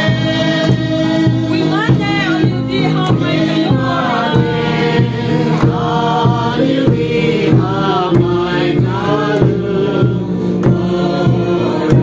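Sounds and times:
barrel drum struck by a stick: 0:00.0 - 0:12.0
group singing together: 0:00.0 - 0:12.0
man singing through a microphone: 0:00.0 - 0:12.0.

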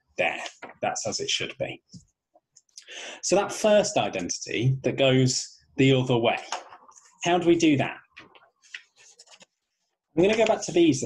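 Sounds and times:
hand rustling on paper: 0:08.2 - 0:10.6.

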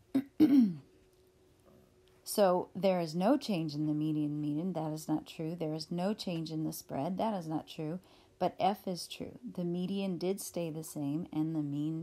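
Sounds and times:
person clearing throat: 0:00.1 - 0:00.9.

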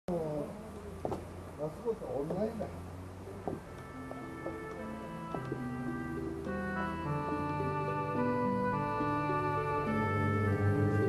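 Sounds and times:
people talking: 0:00.1 - 0:03.5.

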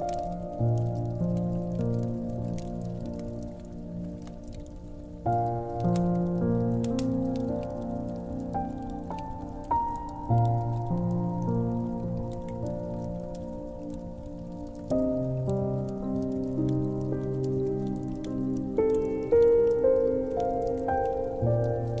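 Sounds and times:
slow piano music: 0:00.0 - 0:22.0
wood fire crackling: 0:00.0 - 0:22.0.

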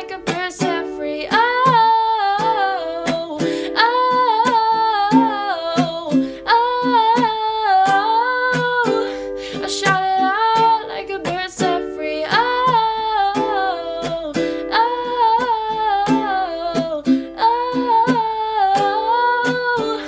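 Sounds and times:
strummed ukulele: 0:00.0 - 0:20.0
woman singing: 0:00.0 - 0:20.0.

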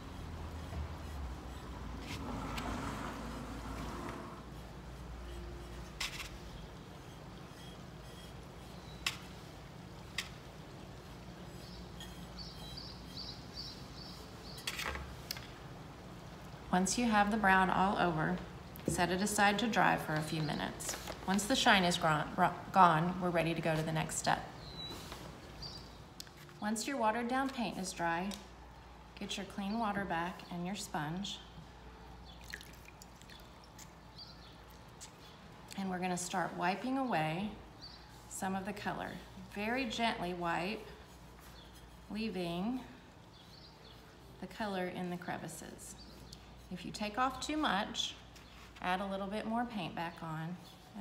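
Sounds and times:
water dripping and trickling: 0:32.2 - 0:35.7.

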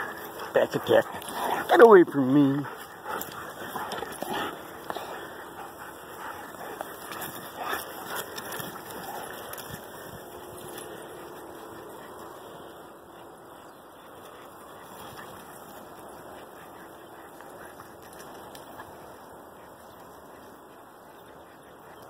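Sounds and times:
dog noises: 0:00.0 - 0:22.0
dogs scuffling in grass: 0:00.0 - 0:22.0.

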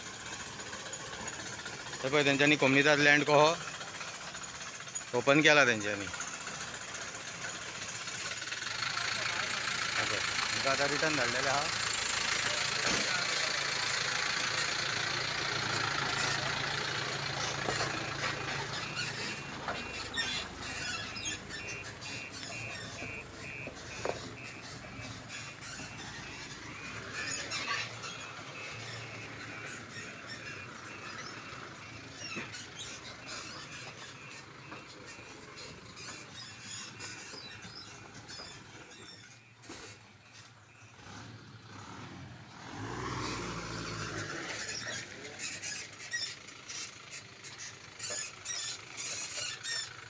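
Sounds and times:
truck engine running: 0:00.0 - 0:50.0.

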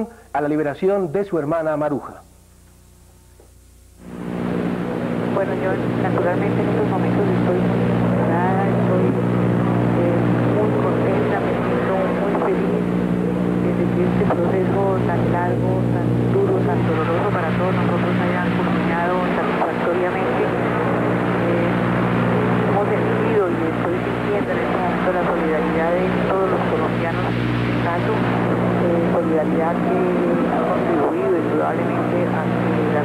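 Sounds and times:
steady hum: 0:00.0 - 0:33.0
woman speaking over telephone: 0:05.3 - 0:33.0.

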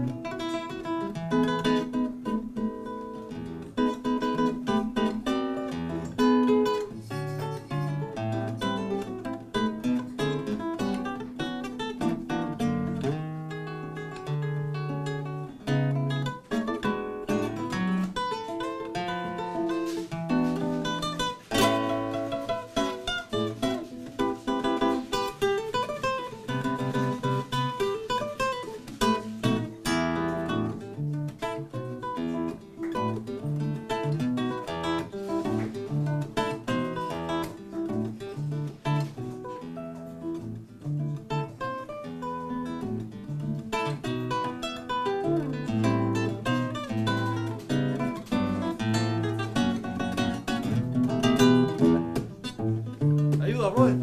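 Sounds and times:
fingerstyle classical guitar: 0:00.0 - 0:54.0.

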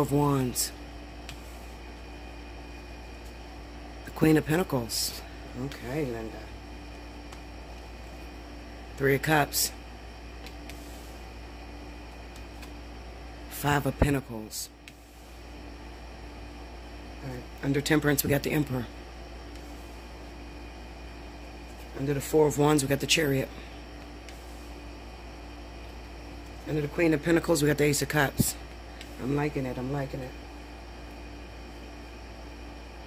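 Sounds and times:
low hum and hiss: 0:00.0 - 0:33.0.

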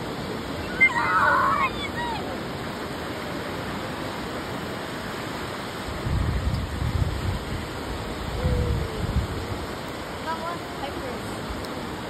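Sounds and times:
ocean surf washing onto beach: 0:00.0 - 0:12.0
wind on microphone: 0:05.8 - 0:10.2.

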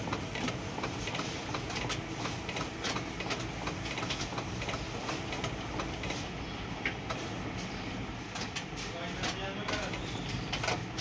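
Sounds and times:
printer motor hum: 0:00.0 - 0:11.0
short printer clicks: 0:08.3 - 0:11.0.

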